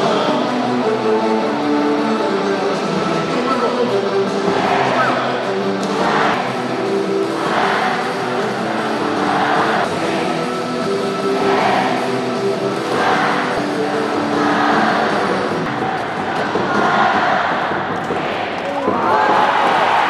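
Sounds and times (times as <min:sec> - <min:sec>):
music with singing: 0:00.0 - 0:20.0.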